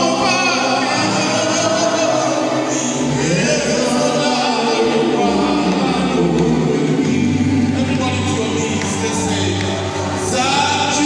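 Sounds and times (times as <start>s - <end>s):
group singing in chorus: 0.0s - 11.0s.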